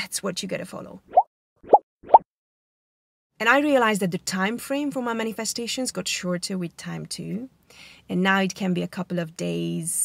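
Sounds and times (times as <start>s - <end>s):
cartoon bloop pops: 1.1s - 2.2s.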